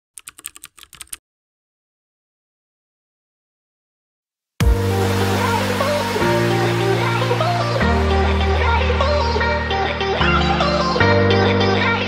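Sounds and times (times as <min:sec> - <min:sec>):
keyboard keystroke clicks: 0:00.2 - 0:01.2.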